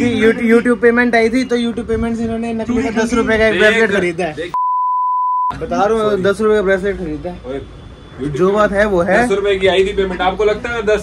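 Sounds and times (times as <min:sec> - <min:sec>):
censor bleep tone: 0:04.6 - 0:05.6.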